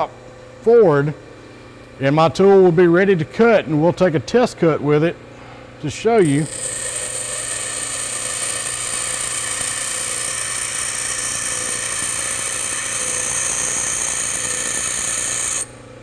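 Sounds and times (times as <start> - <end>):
steel grinding on grinder wheel: 6.2 - 15.7
bench grinder running: 6.2 - 15.8.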